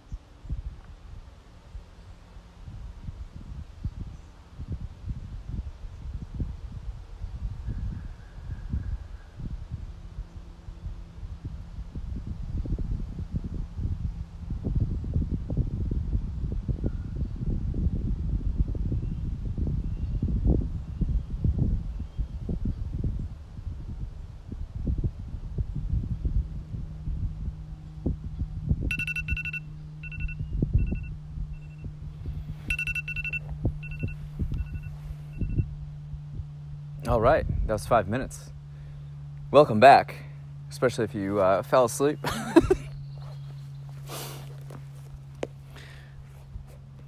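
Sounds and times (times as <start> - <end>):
wind buffeting microphone: 0.0 - 38.2
steady low hum: 0.0 - 47.0
phone timer alarm beeps: 28.9 - 31.9, 32.7 - 35.7.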